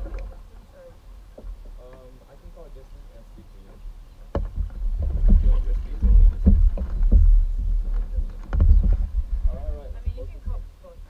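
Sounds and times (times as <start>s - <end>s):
heavy low rumble: 0.0s - 11.0s.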